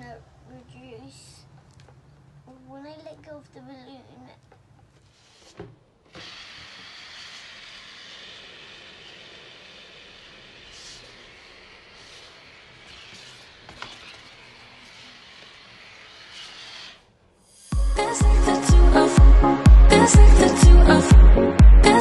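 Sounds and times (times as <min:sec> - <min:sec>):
air hissing from balloon: 0:05.1 - 0:17.8.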